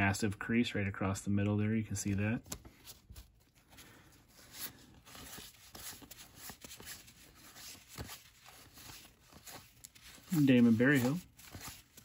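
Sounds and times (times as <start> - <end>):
cards rustling and scraping: 2.0 - 12.0.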